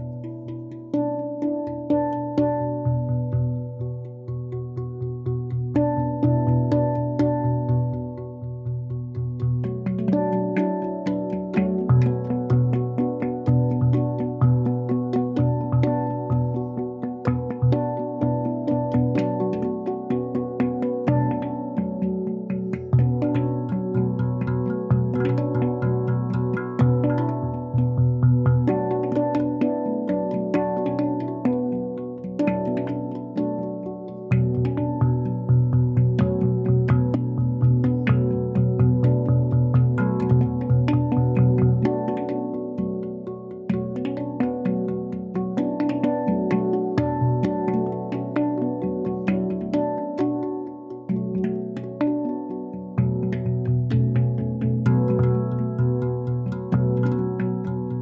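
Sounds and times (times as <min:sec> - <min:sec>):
handpan notes: 0:00.0 - 0:58.0.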